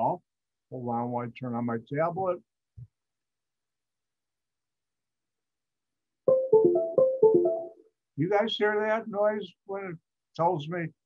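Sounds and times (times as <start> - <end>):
electronic start-up chime: 6.3 - 7.8.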